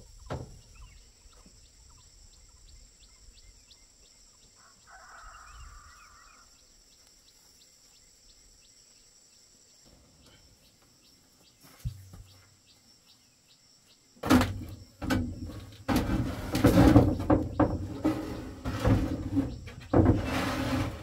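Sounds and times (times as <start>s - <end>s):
bamboo roof frame knock: 14.2s - 19.3s.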